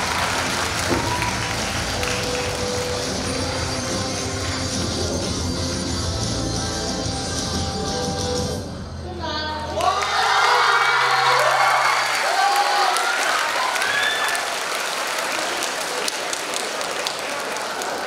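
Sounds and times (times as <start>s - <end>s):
audience applauding and cheering: 0.0s - 6.1s, 9.8s - 18.0s
low backing music: 0.0s - 9.8s.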